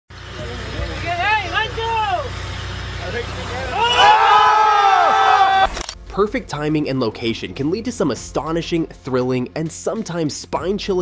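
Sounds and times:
boat engine hum: 0:00.1 - 0:07.8
men shouting excitedly: 0:00.6 - 0:02.4, 0:03.2 - 0:05.7.

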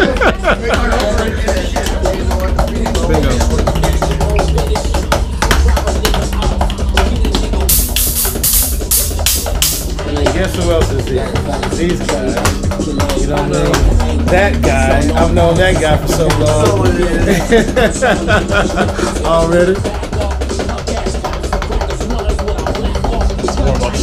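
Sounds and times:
drum kit played fast: 0:00.0 - 0:24.0
music with heavy bass line: 0:00.0 - 0:24.0
cymbal hits: 0:07.7 - 0:10.0.

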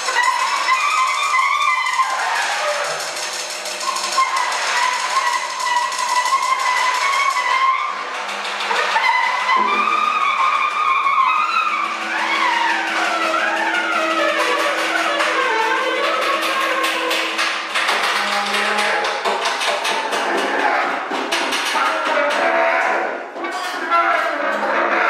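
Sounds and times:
mallet rubbed on snare drum: 0:00.0 - 0:22.6.

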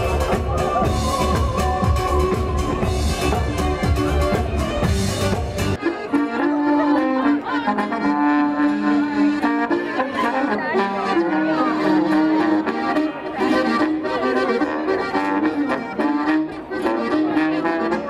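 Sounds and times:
accordion chords: 0:00.0 - 0:18.0
folk band playing: 0:00.0 - 0:18.0.

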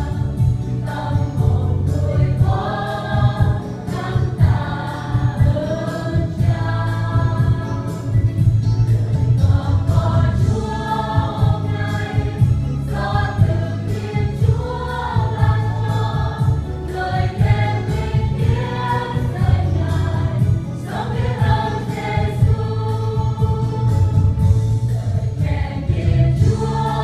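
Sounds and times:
accompaniment with bass and beat: 0:00.0 - 0:27.0
mixed choir singing: 0:00.0 - 0:27.0.

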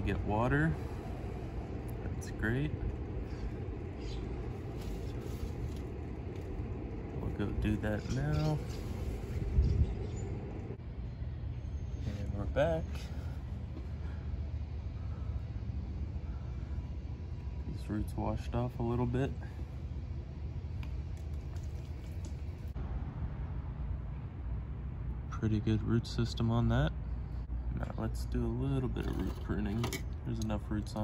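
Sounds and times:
low steady outdoor rumble: 0:00.0 - 0:31.0.

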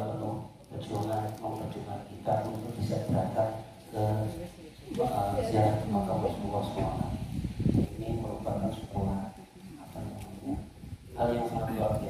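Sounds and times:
man speaking into a microphone: 0:00.0 - 0:12.0.

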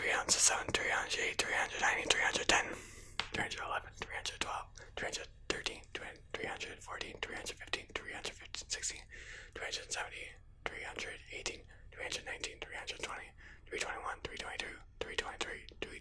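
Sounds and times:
man whispering: 0:00.0 - 0:16.0.

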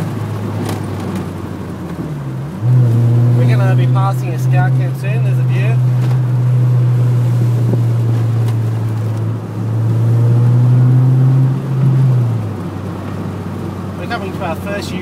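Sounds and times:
car engine droning: 0:00.0 - 0:15.0.

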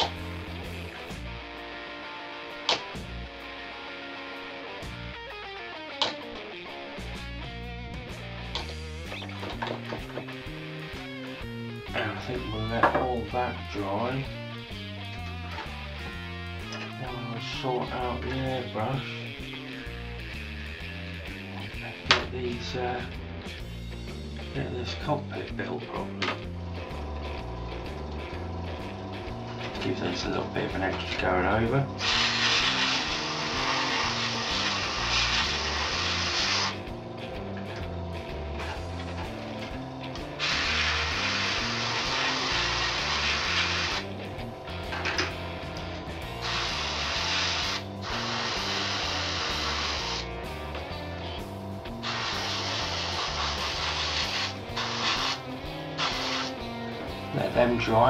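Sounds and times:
background music: 0:00.0 - 0:58.0
airbrush spraying hiss: 0:32.0 - 0:36.9, 0:40.3 - 0:44.2, 0:46.2 - 0:50.3, 0:51.9 - 0:56.7.

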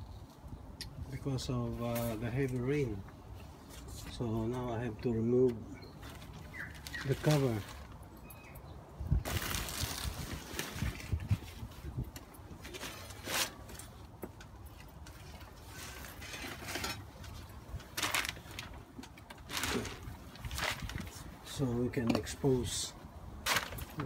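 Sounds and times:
plastic sheeting rustling: 0:06.0 - 0:08.0, 0:09.2 - 0:12.0, 0:15.2 - 0:18.8, 0:19.4 - 0:21.4, 0:23.4 - 0:24.0.

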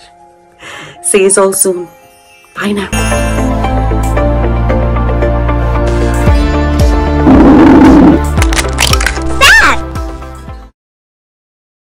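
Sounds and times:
jingle music with held tones: 0:01.2 - 0:04.4.

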